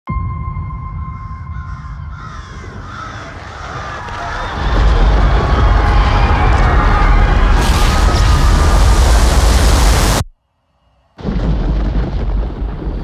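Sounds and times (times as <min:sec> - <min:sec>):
high ringing tone: 0:00.1 - 0:02.1.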